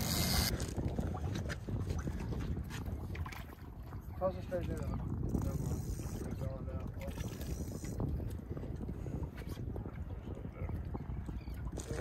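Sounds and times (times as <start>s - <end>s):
wind buffeting microphone: 0.0s - 12.0s
water sloshing against boat hull: 0.5s - 12.0s.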